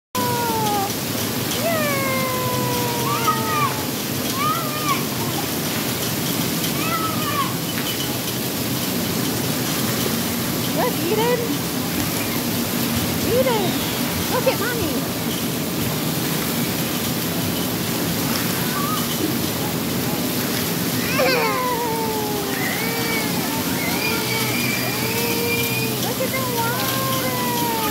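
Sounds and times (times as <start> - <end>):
children crying out: 0.2 - 7.7, 10.8 - 13.7, 17.9 - 27.9
water spraying: 0.2 - 27.9.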